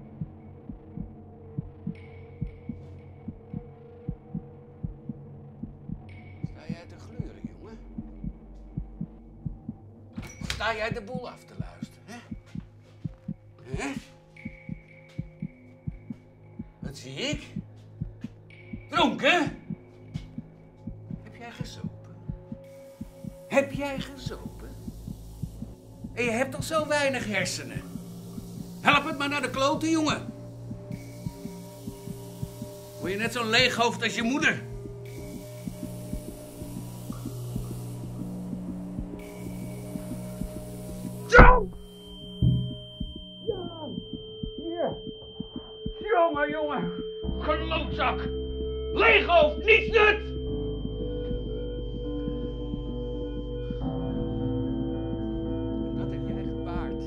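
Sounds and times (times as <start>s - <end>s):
low drone: 27.1s - 44.2s
faint ticks: 34.7s - 41.2s
high ringing tone: 39.2s - 47.6s
low thumps: 39.9s - 46.1s.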